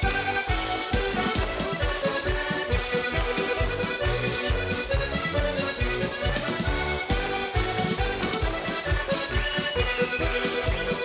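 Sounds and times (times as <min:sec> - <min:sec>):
button accordion folk tune: 0:00.0 - 0:11.0
drums beating: 0:00.0 - 0:11.0.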